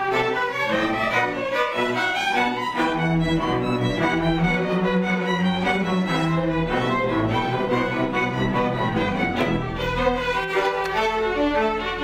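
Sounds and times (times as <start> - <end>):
string orchestra music: 0.0 - 12.0.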